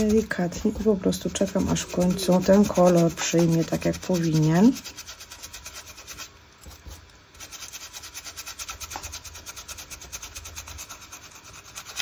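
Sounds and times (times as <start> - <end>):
brush rubbing on canvas: 0.0 - 12.0.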